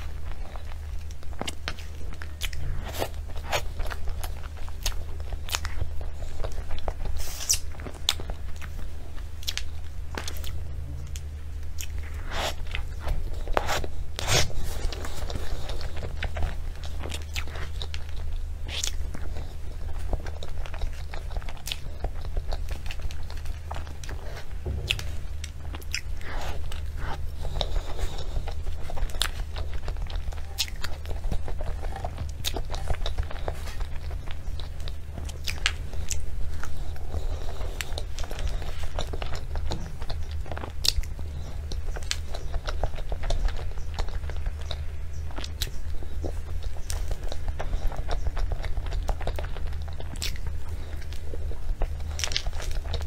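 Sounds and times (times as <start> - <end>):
steady low hum: 0.0 - 53.0
wet mouth smacks and chewing: 0.4 - 8.8, 9.4 - 53.0.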